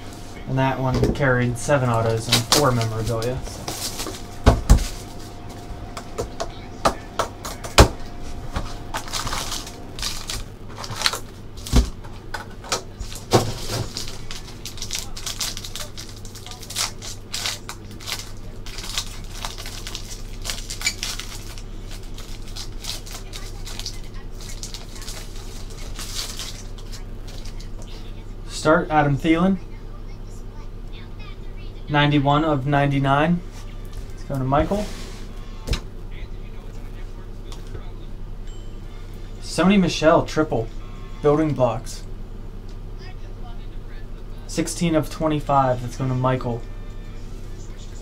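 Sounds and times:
plastic wrap and foil crinkling: 0:01.2 - 0:28.0.

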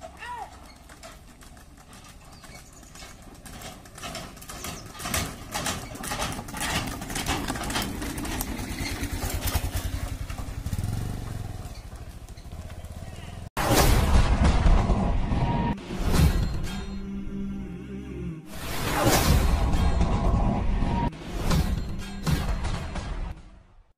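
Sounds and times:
cart wheels rumbling: 0:00.0 - 0:13.5
hooves clopping on road: 0:00.0 - 0:13.5.

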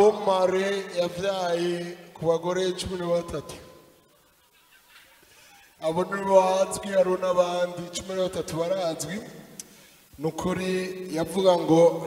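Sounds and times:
man speaking into microphone: 0:00.0 - 0:03.8, 0:05.8 - 0:12.0
faint background noise: 0:00.0 - 0:12.0.

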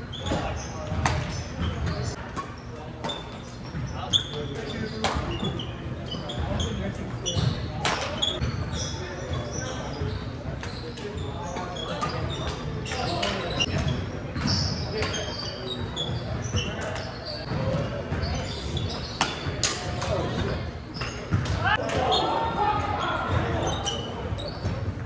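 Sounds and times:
sneakers squeaking on hardwood: 0:00.0 - 0:22.3, 0:23.0 - 0:25.0.

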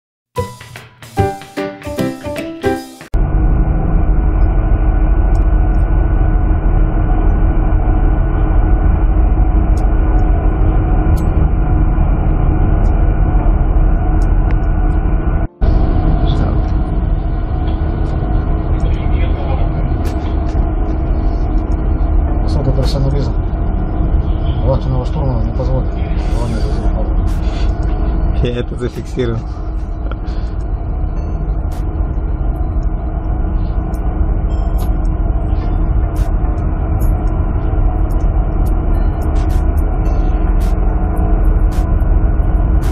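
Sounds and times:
ship engines and deck machinery: 0:03.0 - 0:42.9.

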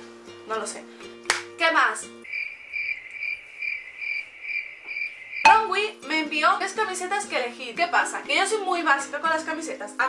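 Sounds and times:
cricket chirping: 0:02.2 - 0:05.7.

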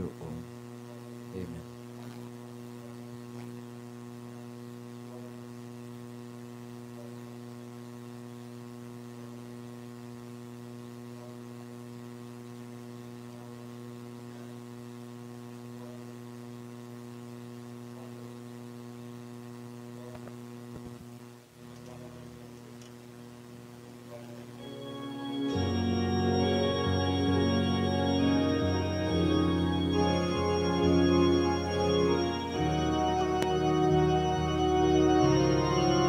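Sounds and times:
electrical mains hum: 0:00.0 - 0:36.0.

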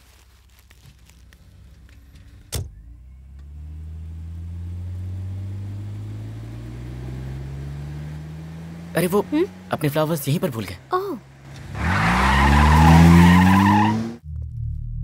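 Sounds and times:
car engine pulling away: 0:00.3 - 0:14.2.

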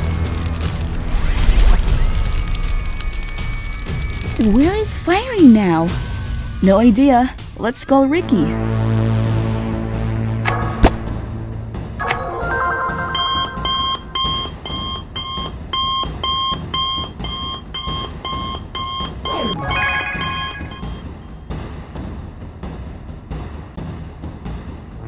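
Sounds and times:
background music: 0:00.0 - 0:25.0
falling electronic tone: 0:12.0 - 0:14.6, 0:19.3 - 0:21.3
smartwatch ringtone beeping: 0:12.0 - 0:21.3.

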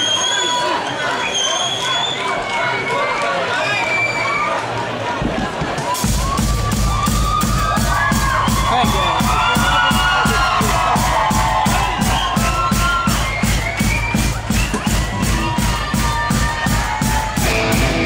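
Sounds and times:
crowd cheering and shouting: 0:00.0 - 0:18.0
fast drum beat: 0:05.6 - 0:18.0
rockabilly song: 0:05.8 - 0:18.0.

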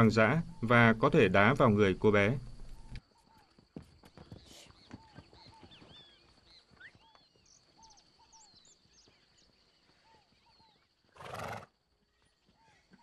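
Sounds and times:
birds chirping: 0:00.0 - 0:13.0
horse snorting: 0:11.2 - 0:11.7.

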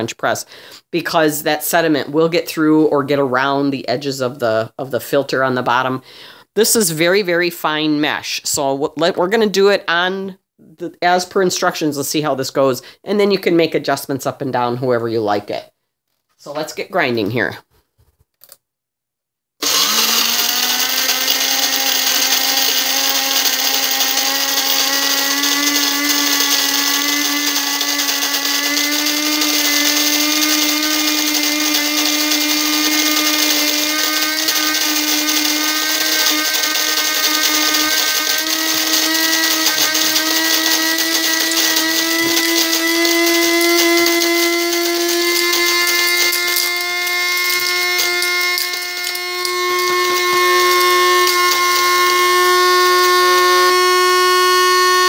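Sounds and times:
coffee grinder motor whine: 0:19.6 - 0:55.0.

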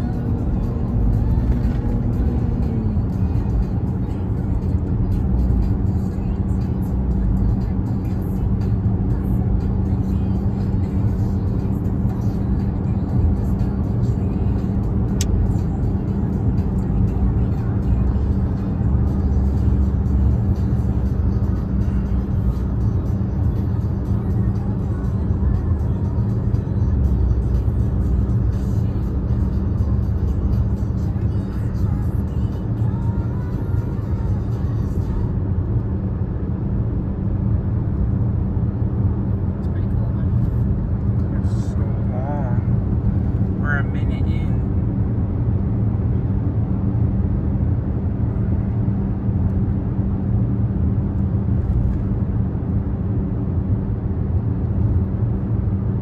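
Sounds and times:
car interior road and engine noise: 0:00.0 - 0:56.0.

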